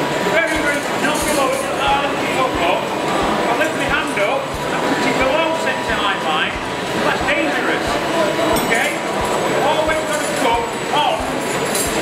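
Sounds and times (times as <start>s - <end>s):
crowd chatter: 0.0s - 12.0s
wood lathe running: 0.0s - 12.0s.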